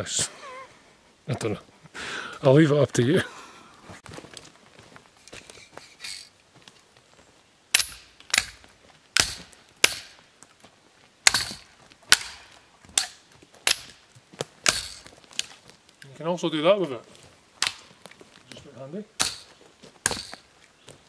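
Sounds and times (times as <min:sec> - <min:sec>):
saw frame striking dry branches: 0:07.7 - 0:10.3, 0:11.2 - 0:15.5, 0:17.6 - 0:17.9, 0:19.2 - 0:20.5
snapping wood cracks: 0:09.2 - 0:10.2, 0:11.3 - 0:16.1, 0:17.6 - 0:18.0.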